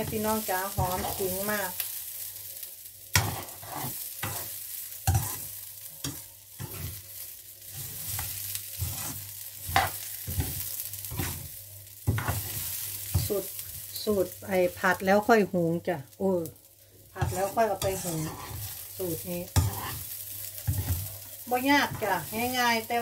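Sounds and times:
spatula scraping and knocking pan: 0:00.0 - 0:01.4, 0:03.1 - 0:07.0, 0:07.7 - 0:13.5, 0:17.2 - 0:22.6
rice sizzling in a frying pan: 0:00.0 - 0:23.0.

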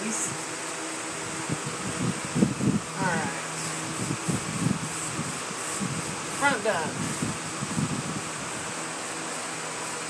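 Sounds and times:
electric fan whirring: 0:00.0 - 0:10.0
paintbrush rubbing on wood: 0:00.0 - 0:10.0.

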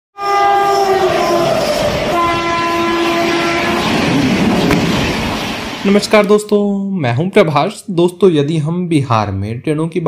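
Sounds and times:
train horn blasts: 0:00.2 - 0:04.2
passing coaches rumbling: 0:00.3 - 0:06.3.

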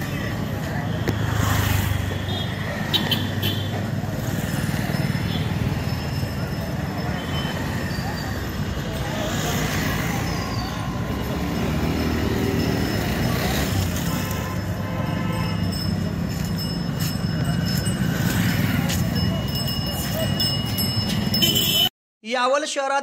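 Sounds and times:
motorcycles and scooters passing: 0:00.0 - 0:21.3.

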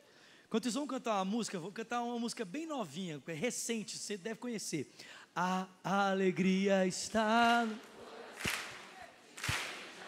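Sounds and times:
hand claps in a large hall: 0:07.0 - 0:10.0.

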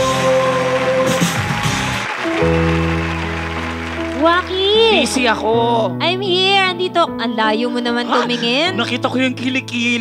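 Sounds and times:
upbeat theme music: 0:00.0 - 0:10.0.

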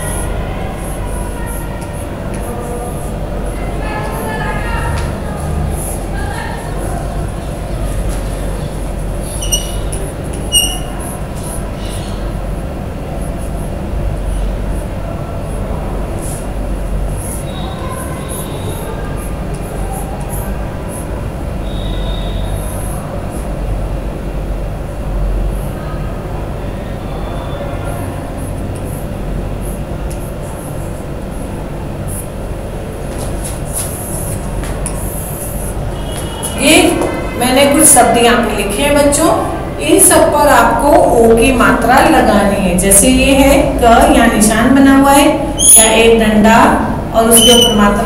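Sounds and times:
chalk writing on blackboard: 0:09.3 - 0:12.2.

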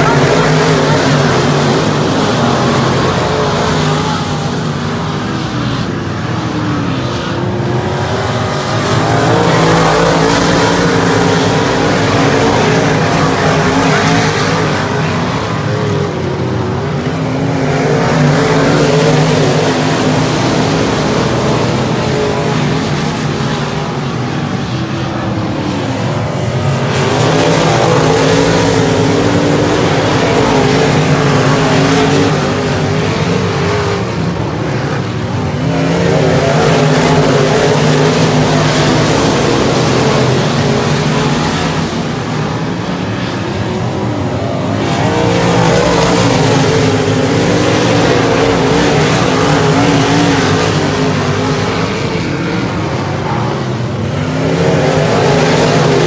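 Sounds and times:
race car engines running hard: 0:00.0 - 0:56.0.

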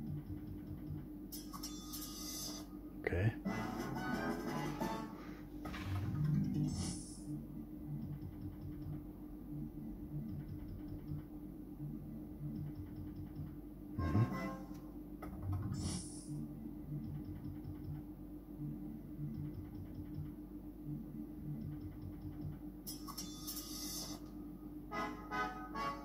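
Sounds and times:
steady hum: 0:00.0 - 0:26.0.

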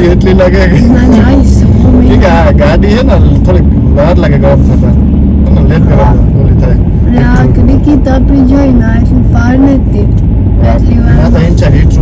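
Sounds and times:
car interior rumble: 0:00.0 - 0:12.0
person talking: 0:00.0 - 0:12.0.

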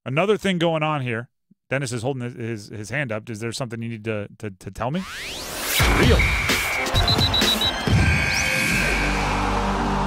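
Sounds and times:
news alert music stinger: 0:05.2 - 0:09.9.

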